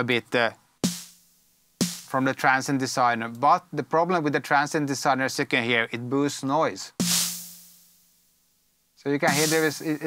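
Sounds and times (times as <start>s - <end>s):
drum machine snare hit: 0.8s - 2.2s, 7.0s - 8.2s, 9.2s - 10.0s.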